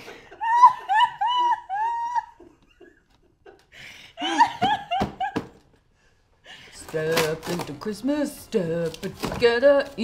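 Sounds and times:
man and woman laughing: 0.0 - 5.7.

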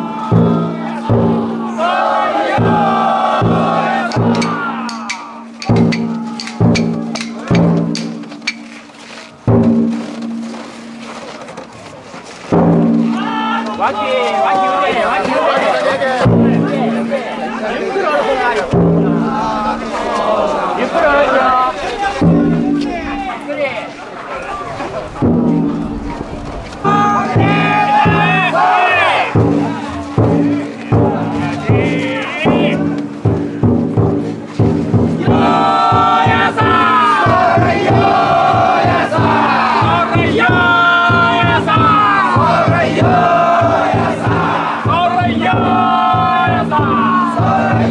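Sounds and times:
large drum hit ringing: 0.0 - 8.3, 9.4 - 11.1, 12.5 - 14.6, 16.2 - 17.8, 18.7 - 20.0, 22.2 - 23.6, 25.2 - 26.0, 26.8 - 47.9
crowd chattering: 0.0 - 47.9.

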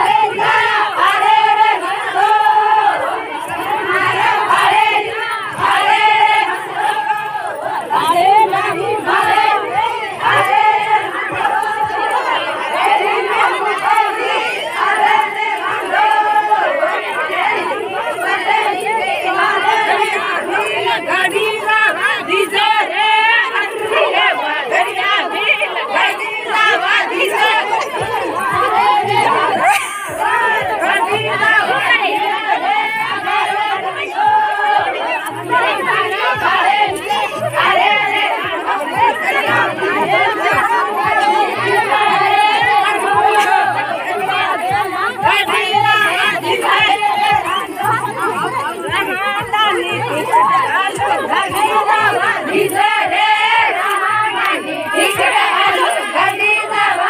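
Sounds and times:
crowd voices: 0.0 - 57.0
women singing together: 0.0 - 57.0.

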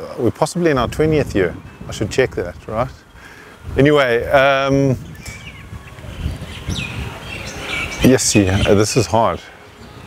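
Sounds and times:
bird chirps: 5.0 - 10.0.

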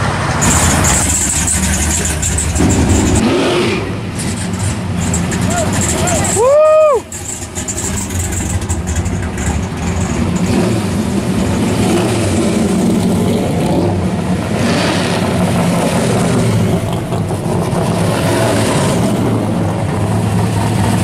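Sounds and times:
car exhausts rumbling: 0.0 - 21.0.

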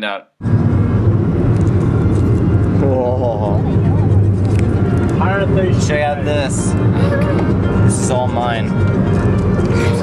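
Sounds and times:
car rumble from inside cabin: 0.5 - 8.2.

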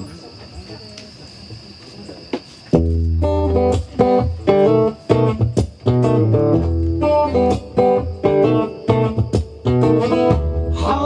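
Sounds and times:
crickets chirping: 0.0 - 11.0
loud guitar chord strummed: 3.2 - 11.0.

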